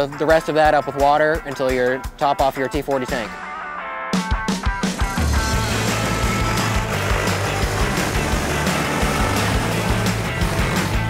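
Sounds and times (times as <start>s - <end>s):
background music: 0.0s - 11.0s
drone rotors humming: 5.4s - 11.0s.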